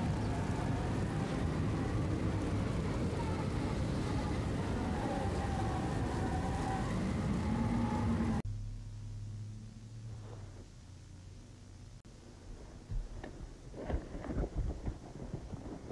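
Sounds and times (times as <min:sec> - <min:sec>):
low hum: 0:00.0 - 0:15.9.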